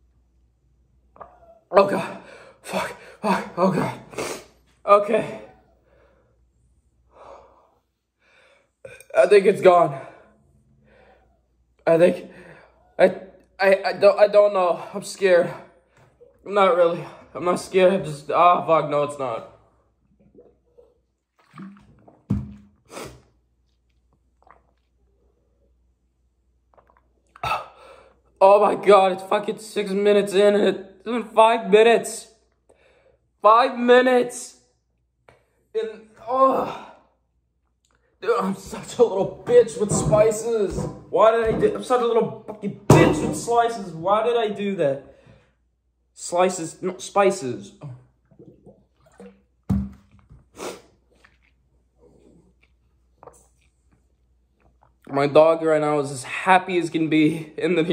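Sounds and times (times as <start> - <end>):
person gulping a drink: 20.0 - 25.4, 26.6 - 27.8, 47.8 - 55.1
jug thunk on table: 22.3 - 22.7, 42.5 - 43.5, 49.7 - 50.1.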